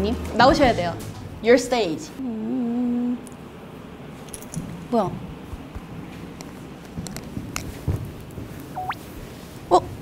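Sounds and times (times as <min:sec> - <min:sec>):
electronic beep sliding upward: 0:08.8 - 0:09.0.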